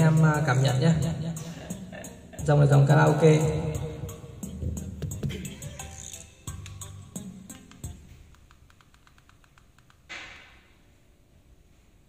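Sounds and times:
backing track over loudspeakers: 0:00.0 - 0:08.5
fast regular ticking: 0:05.2 - 0:10.1.

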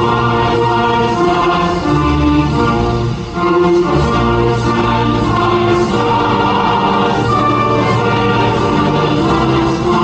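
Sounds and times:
choir singing held chords: 0:00.0 - 0:10.0
instrumental accompaniment: 0:00.0 - 0:10.0.

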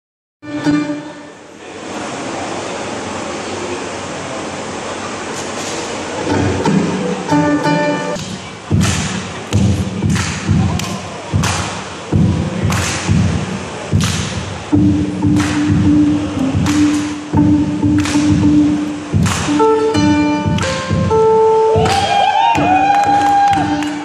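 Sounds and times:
plucked ukulele notes: 0:00.4 - 0:01.6, 0:05.6 - 0:24.0
amplifier hiss: 0:00.5 - 0:24.0
hand striking ukulele body: 0:13.9 - 0:21.1.

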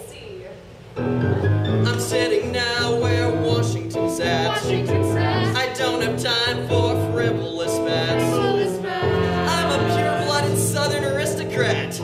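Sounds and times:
electronic keyboard chords: 0:01.0 - 0:11.6
person singing: 0:01.8 - 0:11.0.

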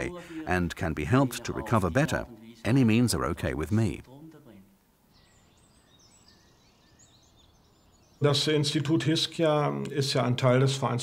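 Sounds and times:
high bird chirps: 0:05.1 - 0:08.3.

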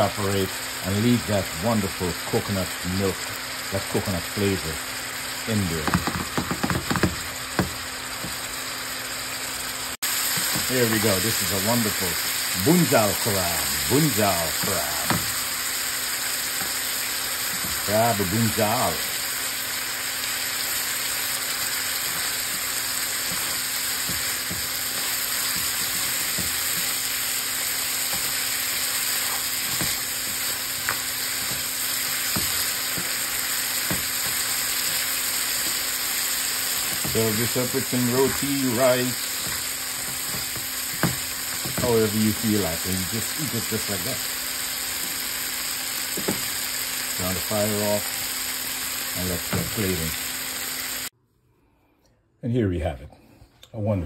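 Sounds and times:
sauce bubbling and sizzling: 0:00.0 - 0:51.1.

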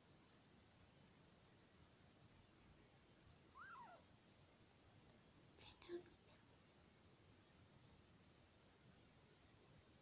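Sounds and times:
kitten mewing: 0:03.5 - 0:04.1.

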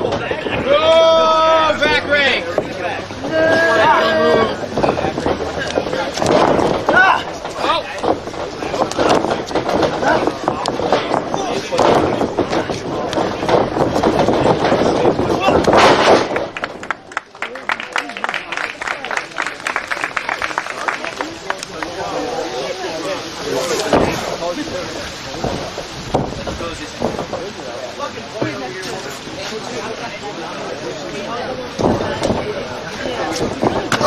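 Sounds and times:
spectators shouting and cheering: 0:00.0 - 0:24.5
voices yelling: 0:00.5 - 0:04.6
knocks and thumps: 0:04.3 - 0:16.8, 0:25.4 - 0:27.6.

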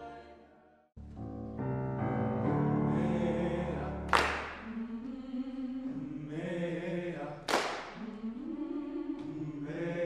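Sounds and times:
vocal ensemble singing chords: 0:00.0 - 0:00.7, 0:02.4 - 0:10.0.

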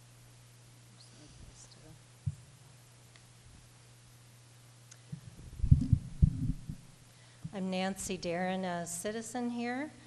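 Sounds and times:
microphone handling thumps: 0:02.2 - 0:02.5, 0:05.1 - 0:07.6.

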